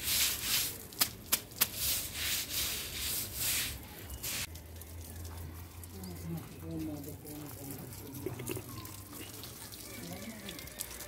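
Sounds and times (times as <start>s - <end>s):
broom scrubbing wet cement: 0.0s - 4.6s.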